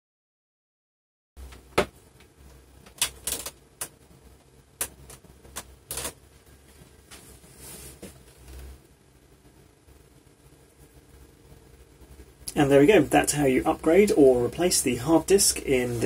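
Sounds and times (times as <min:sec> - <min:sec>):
sharp irregular clicks and knocks: 0:01.5 - 0:06.2
faint low rumble: 0:03.6 - 0:16.0.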